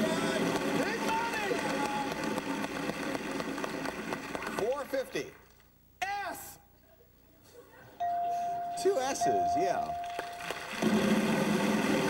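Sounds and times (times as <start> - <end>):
chime tone: 8.0 - 10.5.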